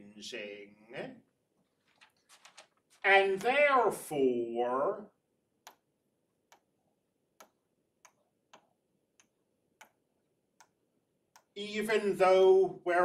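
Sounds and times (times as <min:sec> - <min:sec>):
stylus tapping on tablet screen: 0:05.6 - 0:11.6.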